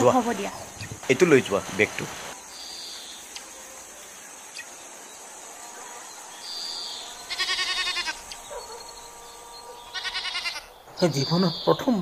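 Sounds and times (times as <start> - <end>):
goat bleating: 7.3 - 8.3, 9.9 - 10.7.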